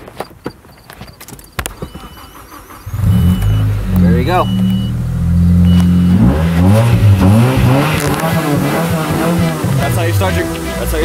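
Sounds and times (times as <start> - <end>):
car engine idling and revving: 1.3 - 11.0.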